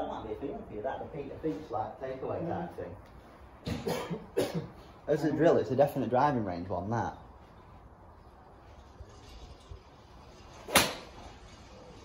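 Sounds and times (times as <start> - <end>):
man coughing: 3.7 - 4.8.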